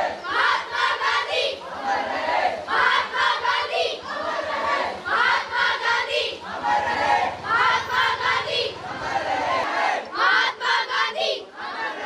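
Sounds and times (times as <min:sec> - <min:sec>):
girls chanting slogans: 0:00.0 - 0:12.0.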